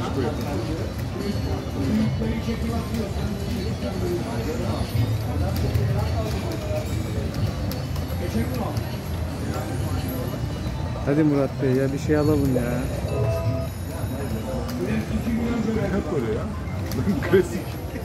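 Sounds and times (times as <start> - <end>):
slot machine music and jingles: 0.0 - 18.0
slot machine spinning: 0.0 - 18.0.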